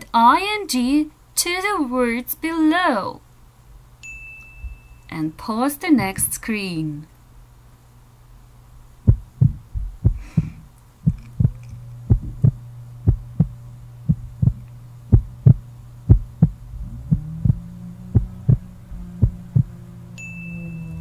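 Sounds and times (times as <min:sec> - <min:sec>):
steady low hum: 0:00.0 - 0:21.0
heartbeat-like double thump: 0:09.1 - 0:19.8
second low tone: 0:11.1 - 0:21.0.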